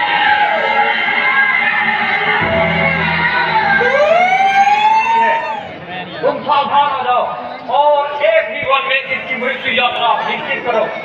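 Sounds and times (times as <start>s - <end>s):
rising siren-like electronic tone: 2.4s - 5.8s.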